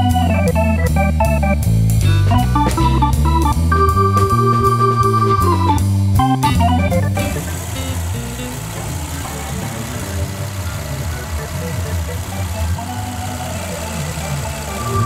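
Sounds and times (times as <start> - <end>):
background music: 0.0 - 15.0
car engine idling: 0.2 - 15.0.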